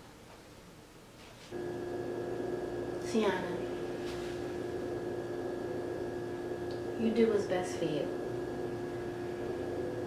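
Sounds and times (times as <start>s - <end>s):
steady tone: 1.5s - 10.0s.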